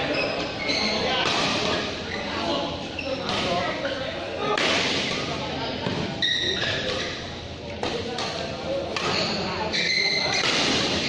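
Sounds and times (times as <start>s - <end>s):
rackets hitting shuttlecock: 4.5s - 9.4s, 10.3s - 11.0s.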